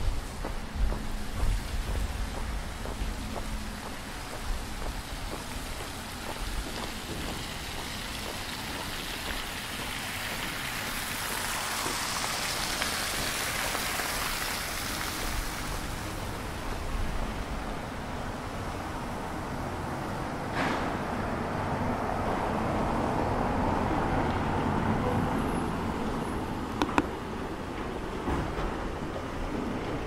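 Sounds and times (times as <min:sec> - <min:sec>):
fountain water splashing: 0:00.0 - 0:19.4.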